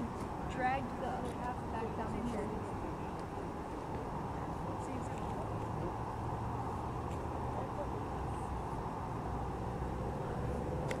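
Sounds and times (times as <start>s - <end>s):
constant low hum: 0.0s - 11.0s
idling vehicles and traffic rumble: 0.0s - 11.0s.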